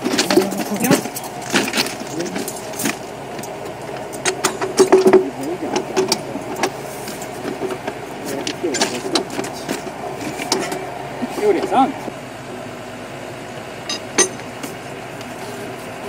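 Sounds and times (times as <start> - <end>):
engine running: 0.0 - 16.0
workers' voices: 0.0 - 16.0.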